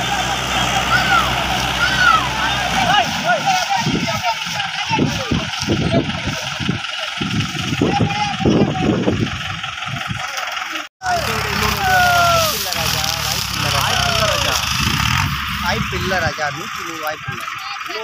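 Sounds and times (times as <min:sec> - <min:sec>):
people talking and calling out: 0:00.0 - 0:18.0
tractor engine running: 0:00.0 - 0:18.0.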